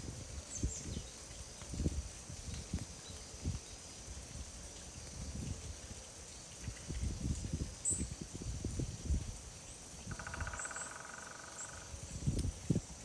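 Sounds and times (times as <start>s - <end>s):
insect hum: 0.0s - 13.0s
low wind gusts: 0.0s - 13.0s.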